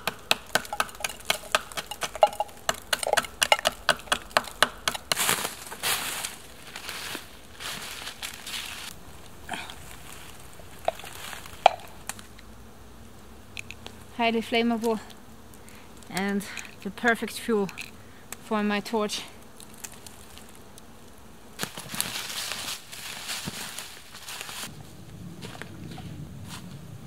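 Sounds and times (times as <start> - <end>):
knife scraping resin off bark: 0.0 - 5.4
footsteps crunching dry leaves: 5.0 - 8.9, 9.8 - 12.0, 21.6 - 24.7.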